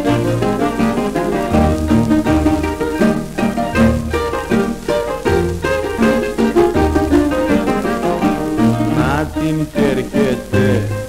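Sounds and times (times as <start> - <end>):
steady bass beat: 0.0 - 11.0
string band melody: 0.0 - 11.0.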